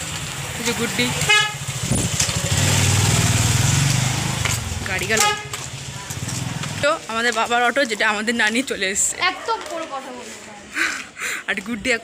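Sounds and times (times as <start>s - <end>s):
small vehicle engine passing: 0.1s - 5.0s.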